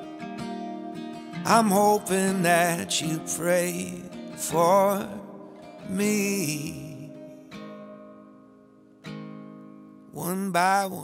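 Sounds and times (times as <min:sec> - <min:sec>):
acoustic guitar chord strummed: 0:00.0 - 0:11.0.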